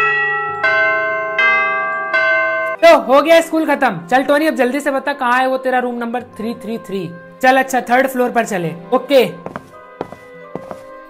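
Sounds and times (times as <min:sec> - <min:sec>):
school bell chime: 0:00.0 - 0:02.9.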